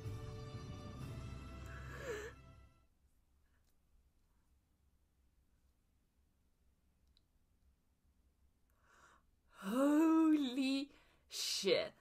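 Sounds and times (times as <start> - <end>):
music: 0.0 - 2.9
woman sighing: 1.6 - 2.5.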